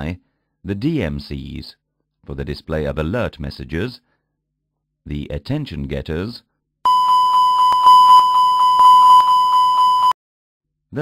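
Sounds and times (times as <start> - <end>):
repetitive warning chime: 6.9 - 10.2.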